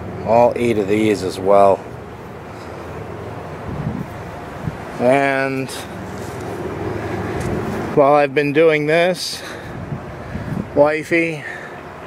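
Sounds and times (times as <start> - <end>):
wind rumbling on microphone: 3.2 - 5.1, 9.6 - 10.9.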